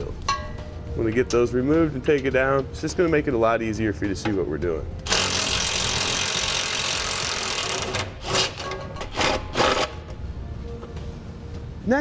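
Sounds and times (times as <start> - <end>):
impact wrench bursts: 5.0 - 10.0.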